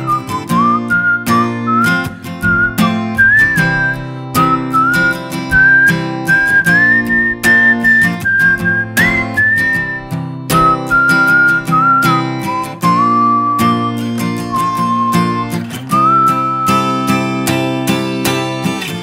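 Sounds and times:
man whistling a melody: 0:00.0 - 0:17.8
strummed acoustic guitar: 0:00.0 - 0:19.0.

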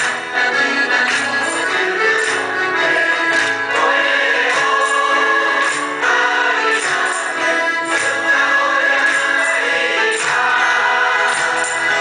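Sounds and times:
group singing in unison: 0:00.0 - 0:12.0
hand claps: 0:00.0 - 0:12.0.

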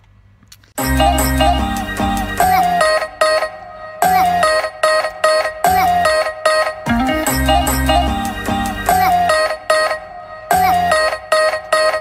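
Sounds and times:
bright tune of sharply struck notes: 0:00.8 - 0:02.8, 0:06.8 - 0:09.1.

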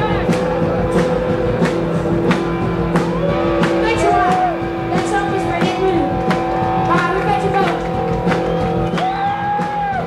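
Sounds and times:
drums struck: 0:00.0 - 0:10.0
live rock band playing: 0:00.0 - 0:10.0.

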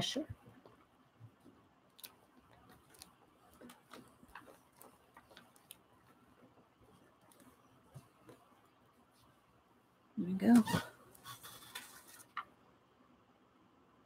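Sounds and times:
paper rustling: 0:02.0 - 0:08.5, 0:11.2 - 0:12.5.

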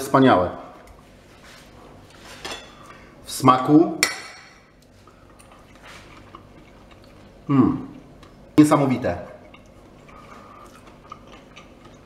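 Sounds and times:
knife scraping on plate: 0:02.1 - 0:02.9.

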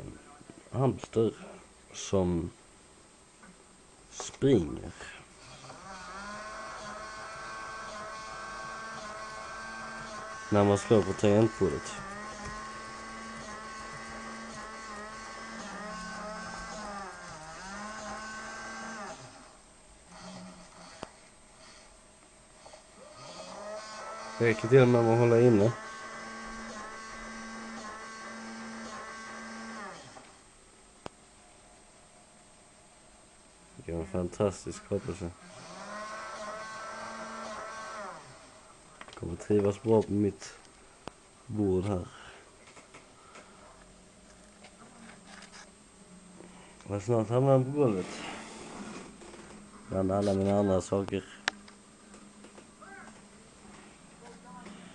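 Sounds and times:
small electric motor whining: 0:05.4 - 0:21.8, 0:22.7 - 0:30.4, 0:34.8 - 0:38.6.

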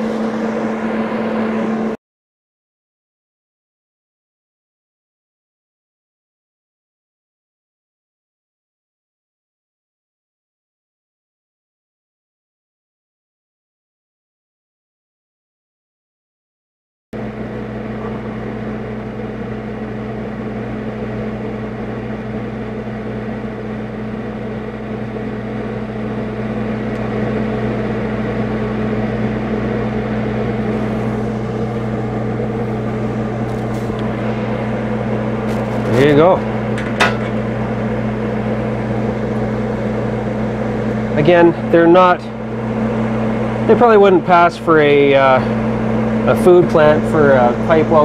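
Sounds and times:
welding machine electrical hum: 0:00.0 - 0:02.0, 0:17.2 - 0:48.0.

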